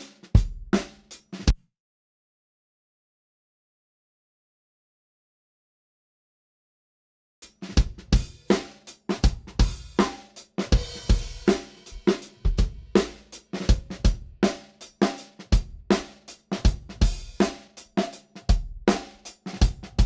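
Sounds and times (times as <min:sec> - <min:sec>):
drum kit beat: 0:00.0 - 0:01.6, 0:07.4 - 0:20.0.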